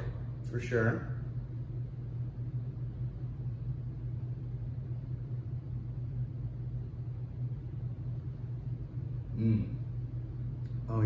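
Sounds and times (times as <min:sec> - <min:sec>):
low background hum and rumble: 0:00.0 - 0:11.0.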